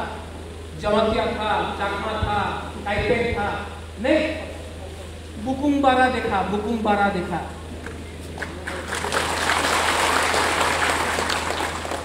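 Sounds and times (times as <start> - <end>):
audience applauding: 8.4 - 12.0.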